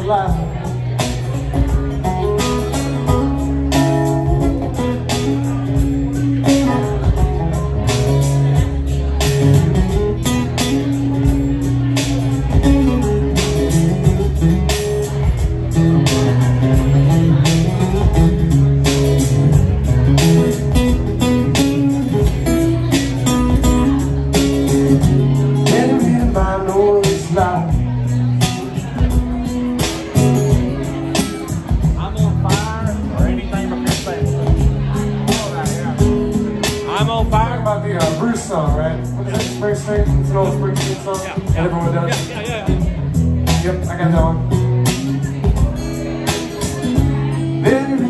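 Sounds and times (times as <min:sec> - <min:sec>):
steady low bass: 0:00.0 - 0:46.2
acoustic guitar strumming: 0:00.0 - 0:48.0.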